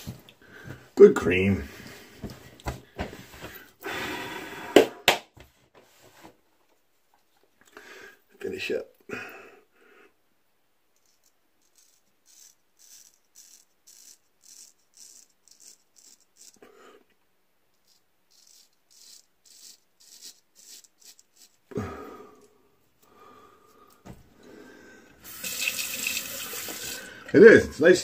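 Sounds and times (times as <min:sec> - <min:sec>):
razor scraping stubble: 0:11.0 - 0:16.6, 0:17.8 - 0:21.7.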